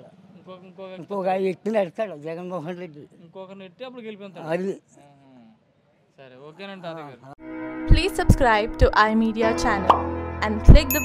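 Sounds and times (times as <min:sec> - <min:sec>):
man's voice: 0:00.0 - 0:05.5, 0:06.2 - 0:07.4.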